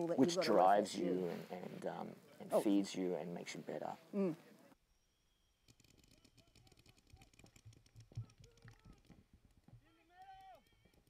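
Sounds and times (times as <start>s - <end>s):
paintball markers clicking: 5.7s - 11.0s.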